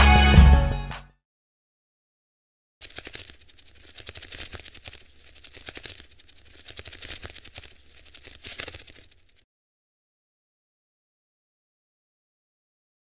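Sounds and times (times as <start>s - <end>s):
rapid crackling rattle: 2.8s - 9.4s.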